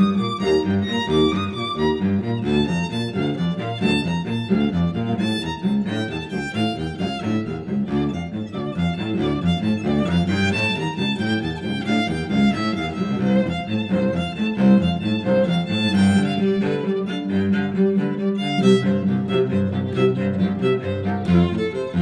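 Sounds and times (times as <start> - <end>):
low cello line: 0.0 - 22.0
violin playing: 0.0 - 22.0.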